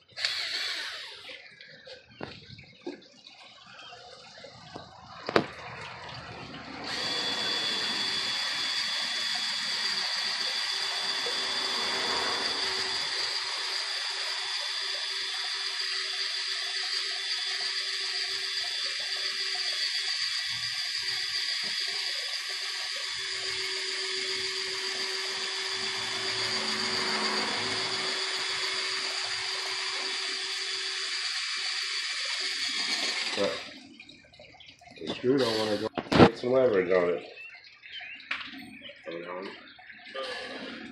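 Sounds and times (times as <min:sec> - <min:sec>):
cordless drill driving screw into wood: 0:00.2 - 0:01.4, 0:06.9 - 0:33.8, 0:35.4 - 0:36.3
drill trigger click: 0:00.2 - 0:01.4.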